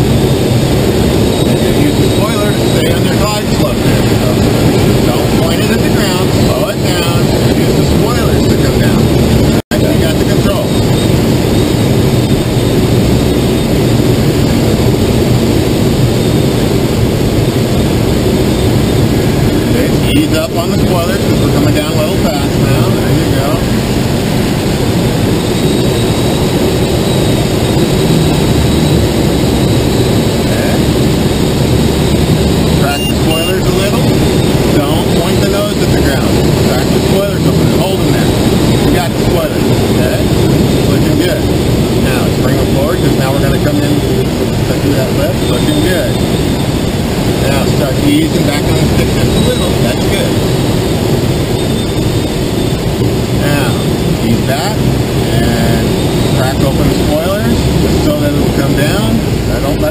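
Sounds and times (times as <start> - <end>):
air rushing over glider: 0.0 - 59.9.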